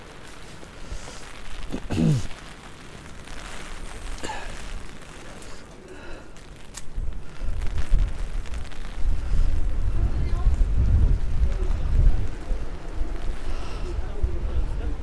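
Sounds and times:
wind buffeting microphone: 6.9s - 15.0s.

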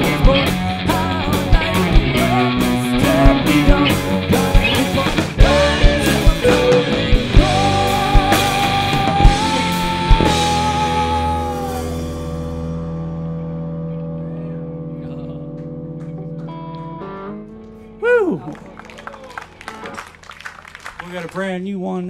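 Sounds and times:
rock band electric guitars and drums: 0.0s - 20.1s
scattered claps: 15.5s - 17.8s, 18.5s - 21.6s.

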